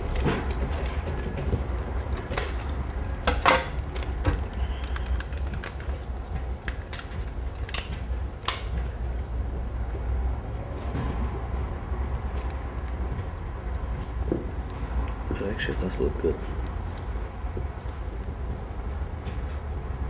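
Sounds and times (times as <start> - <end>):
light clicks and clinks: 2.1 - 5.9, 11.7 - 13.8, 14.6 - 16.8.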